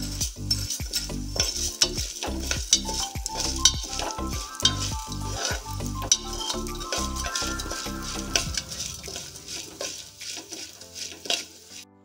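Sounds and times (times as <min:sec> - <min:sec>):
grains rattling against pot: 0:00.0 - 0:11.8
metal spoon scraping a pot: 0:00.0 - 0:11.8.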